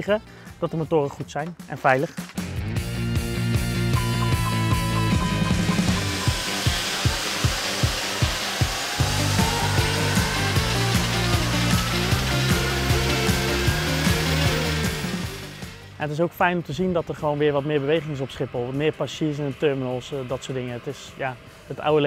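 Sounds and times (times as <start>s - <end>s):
music with steady beat: 1.5s - 16.0s
jet engines whining and rushing: 3.5s - 22.0s.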